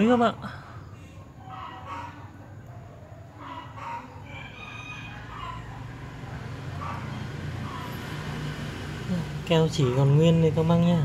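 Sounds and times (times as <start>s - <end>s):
chickens clucking: 0.0s - 8.0s
rooster crowing: 3.4s - 8.0s.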